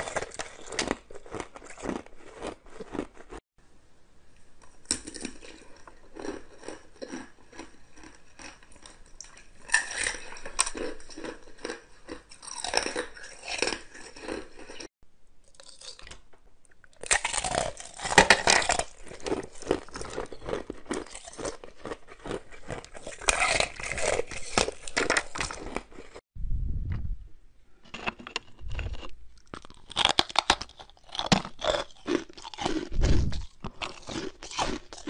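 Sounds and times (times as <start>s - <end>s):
ice being chewed: 0.0s - 3.4s, 4.6s - 14.9s, 16.9s - 26.2s, 27.9s - 35.0s.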